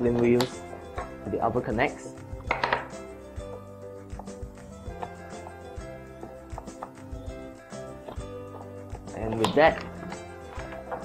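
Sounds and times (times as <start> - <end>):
quiet background music: 0.0 - 11.0
plastic clicks and knocks: 2.4 - 2.9.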